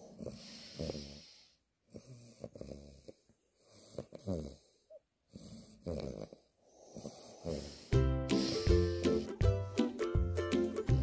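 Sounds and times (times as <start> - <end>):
puppy snoring softly: 0.0 - 8.0.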